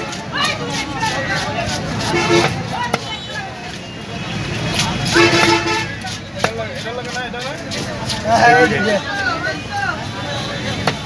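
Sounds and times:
market noise: 0.0s - 11.0s
voices: 0.0s - 11.0s
horn toots: 4.2s - 6.0s.

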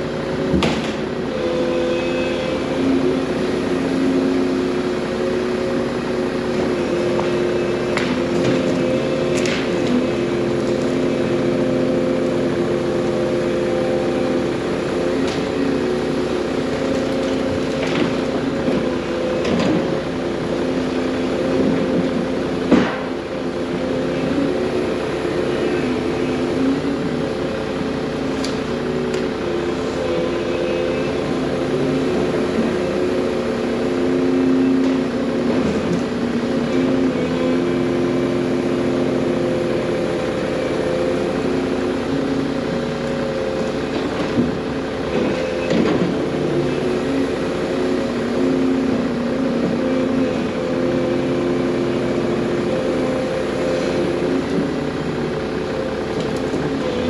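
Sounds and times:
excavator diesel engine running: 0.0s - 57.0s.

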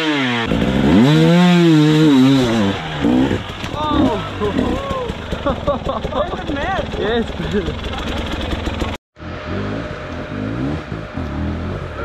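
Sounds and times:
dirt bike engine revving: 0.0s - 12.0s
people shouting: 3.8s - 5.2s
people laughing: 4.0s - 8.2s.

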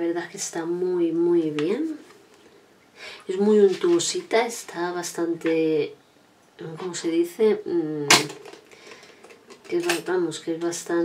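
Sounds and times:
woman speaking: 0.0s - 2.1s, 3.2s - 6.0s, 6.6s - 8.4s, 9.6s - 11.0s
woman breathing: 2.9s - 3.3s, 8.6s - 9.5s.

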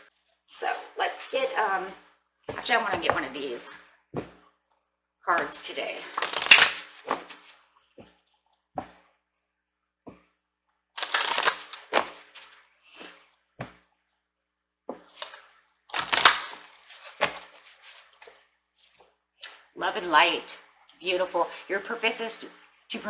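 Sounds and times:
cards being shuffled: 6.1s - 7.6s, 11.0s - 13.1s, 14.9s - 19.6s.

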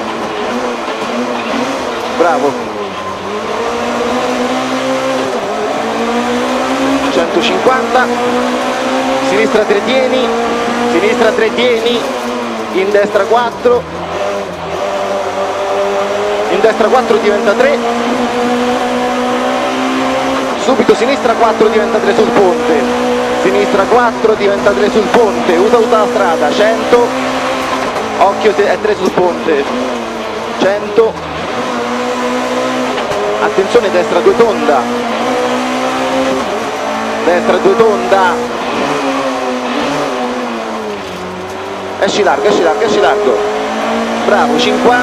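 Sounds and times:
rally car engine: 0.0s - 45.0s.

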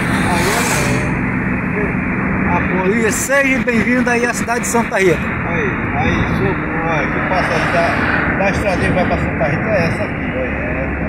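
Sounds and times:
engine and tyre drone: 0.0s - 11.0s.

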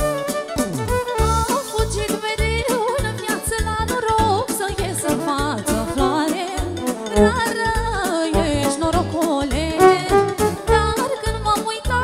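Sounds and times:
folk party music: 0.0s - 11.9s.

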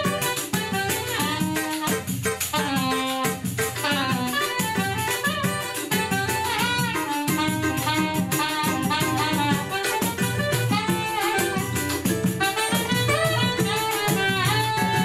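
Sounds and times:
cavaquinho strumming: 0.0s - 15.0s
hand percussion pulse: 0.0s - 15.0s
saxophone melody: 0.0s - 15.0s.

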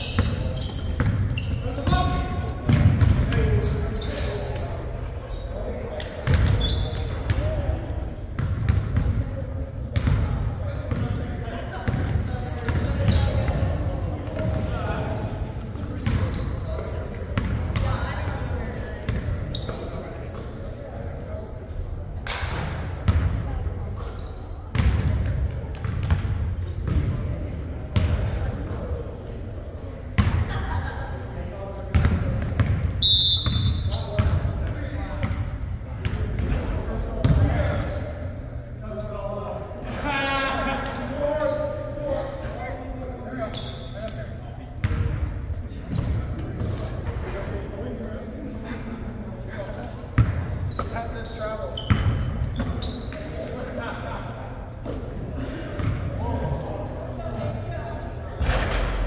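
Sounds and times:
sneakers squeaking: 0.0s - 31.3s, 31.9s - 40.1s, 40.8s - 56.8s
short high whistle: 33.0s - 33.8s.

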